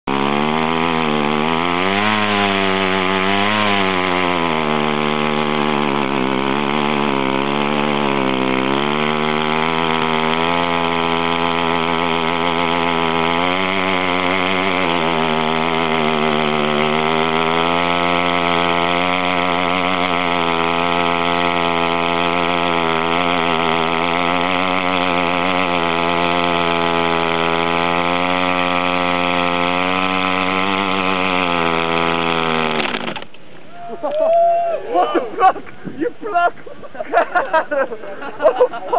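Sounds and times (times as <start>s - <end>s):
small engine at high revs: 0.0s - 33.5s
tyre spinning on asphalt: 0.1s - 33.5s.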